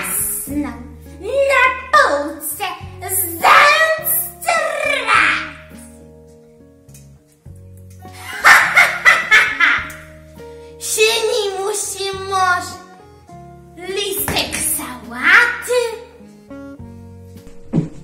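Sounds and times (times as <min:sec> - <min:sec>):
girl laughing: 0:08.2 - 0:10.1.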